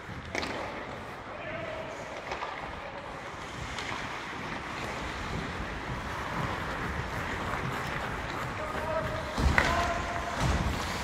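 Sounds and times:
skate blades scraping on ice: 1.9 - 11.0.

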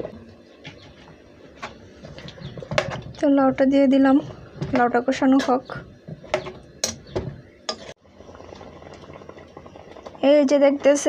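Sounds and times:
curry bubbling in a pot: 8.0 - 11.0.

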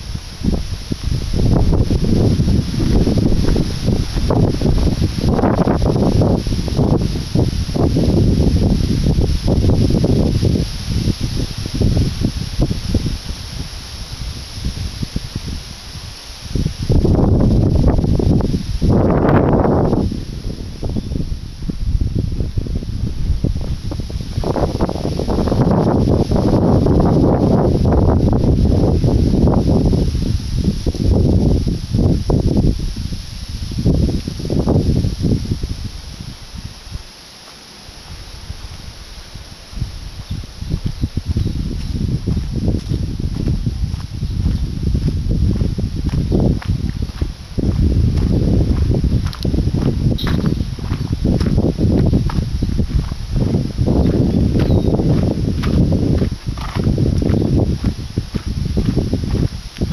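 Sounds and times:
wind buffeting microphone: 0.0 - 37.2, 37.8 - 59.9
tree leaves rustling: 0.0 - 59.9.

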